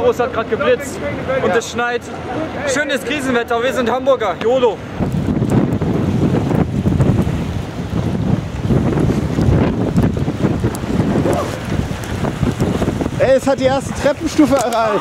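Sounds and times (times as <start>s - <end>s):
storm wind buffeting microphone: 4.1s - 15.0s.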